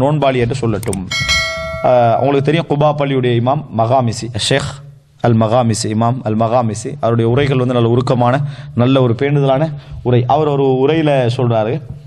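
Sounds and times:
bell chime sound effect: 1.1s - 2.6s
man speaking: 1.9s - 2.9s.

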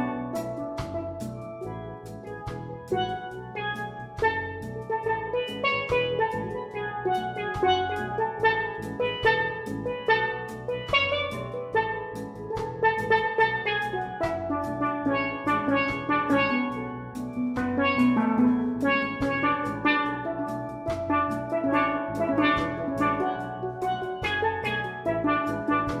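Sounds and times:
drum beat: 0.0s - 1.4s, 2.4s - 26.0s
steelpans playing rhythmic runs: 0.0s - 26.0s.

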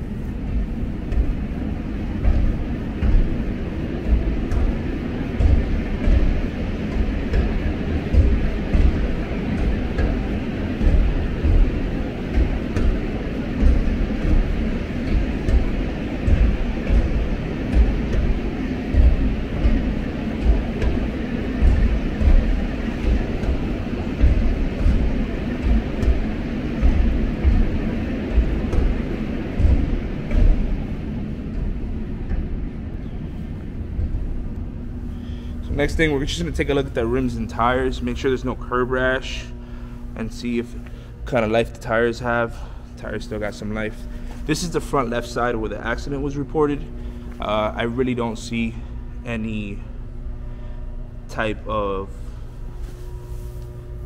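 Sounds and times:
footstep thuds: 0.0s - 38.7s
steady rushing noise: 0.0s - 54.0s.

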